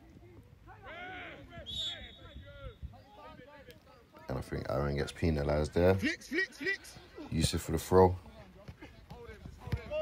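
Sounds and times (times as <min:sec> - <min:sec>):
players' voices calling: 0:00.1 - 0:10.0
referee's whistle blast: 0:01.6 - 0:02.8.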